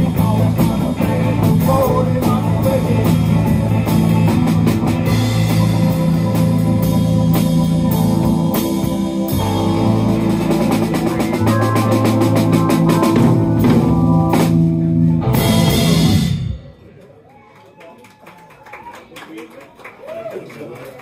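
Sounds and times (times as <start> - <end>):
live rock band playing: 0.0 - 16.9.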